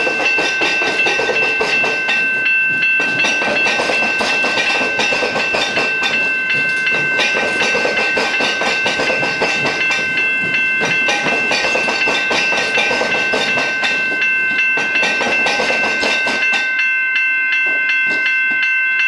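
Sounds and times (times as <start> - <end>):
train wheels clacking over rail joints: 0.0 - 16.8, 17.6 - 18.7
level crossing alarm bells: 0.0 - 19.0.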